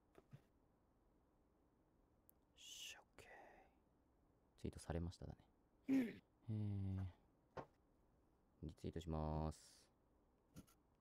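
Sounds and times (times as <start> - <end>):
faint whispering: 2.6 - 3.8.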